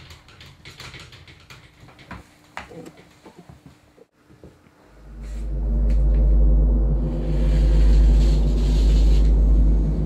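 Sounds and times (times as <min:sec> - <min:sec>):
droning hum: 0:04.7 - 0:10.0
loud low rumble: 0:04.9 - 0:10.0.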